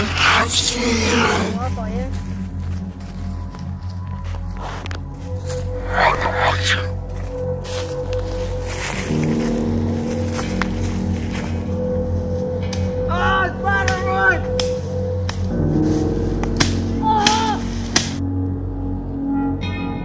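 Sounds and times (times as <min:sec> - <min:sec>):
wavering wailing tones: 0:00.0 - 0:17.9
eerie drone chords: 0:00.0 - 0:20.0.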